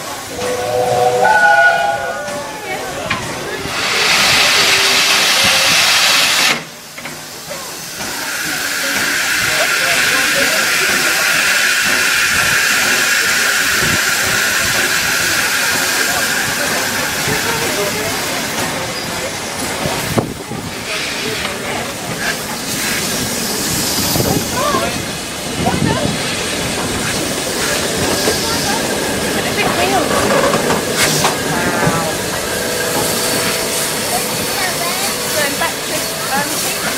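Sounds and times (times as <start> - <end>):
steam locomotive hissing: 0.0 - 36.9.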